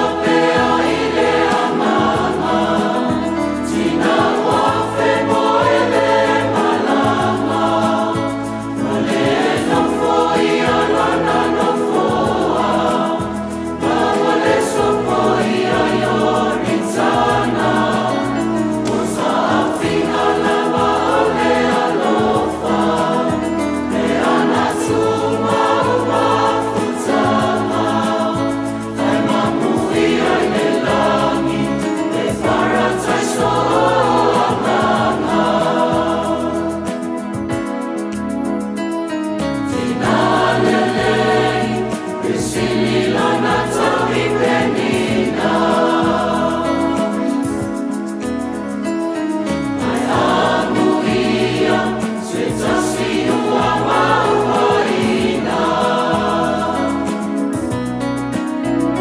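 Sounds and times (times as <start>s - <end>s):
mixed choir singing a hymn: 0.0s - 59.0s.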